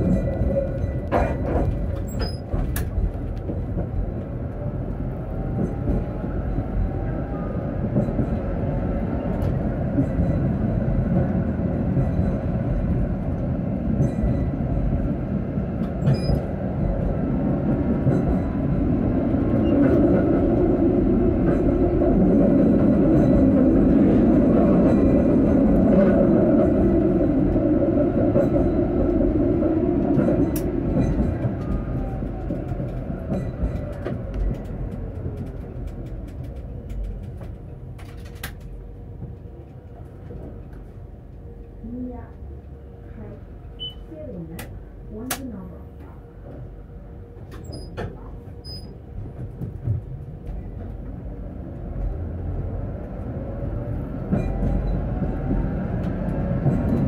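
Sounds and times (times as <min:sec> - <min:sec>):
tram motor whine: 0:00.0 - 0:57.0
tram wheels rumbling on rails: 0:00.0 - 0:57.0.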